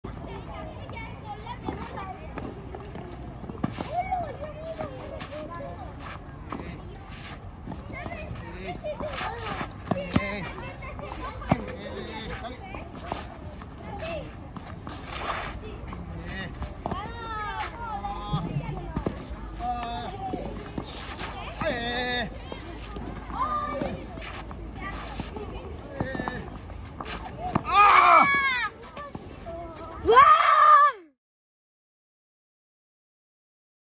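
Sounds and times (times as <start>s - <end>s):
racquets hitting tennis ball: 6.5s - 29.3s
children calling out: 27.5s - 29.0s, 30.0s - 31.2s
child shouting excitedly: 27.6s - 28.8s, 30.0s - 31.2s.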